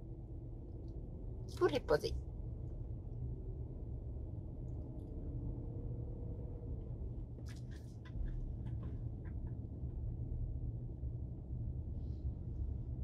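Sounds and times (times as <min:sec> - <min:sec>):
engine and tyre rumble: 0:00.0 - 0:13.0.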